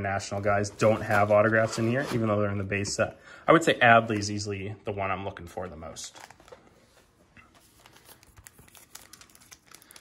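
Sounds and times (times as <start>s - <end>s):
wrapper crinkling: 7.6s - 10.0s.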